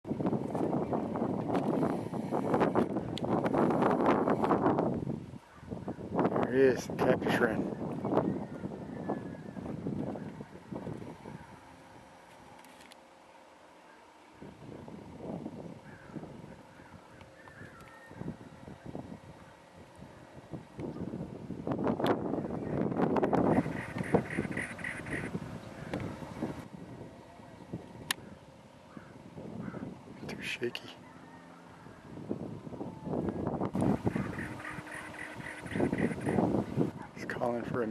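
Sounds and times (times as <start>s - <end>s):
wind buffeting microphone: 0.0s - 12.6s, 14.4s - 30.5s, 31.6s - 37.9s
handheld camera rustling and clicks: 12.2s - 13.1s
wren singing rasping notes: 22.2s - 26.6s, 32.9s - 37.0s.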